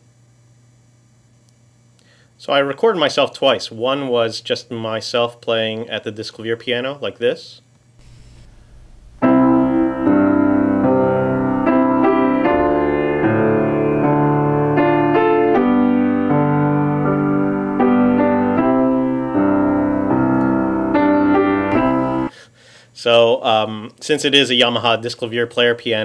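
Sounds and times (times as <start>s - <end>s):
grand piano chords and melody: 8.0s - 22.3s.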